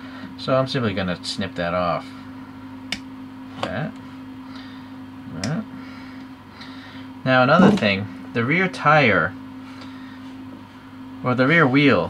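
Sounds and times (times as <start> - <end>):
steady background hum: 0.0 - 12.0
person speaking a word: 7.3 - 8.1.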